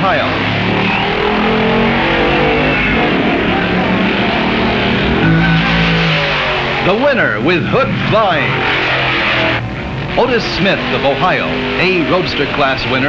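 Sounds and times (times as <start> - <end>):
steady noisy bed: 0.0 - 13.0
guitar-led soundtrack music: 2.2 - 10.2.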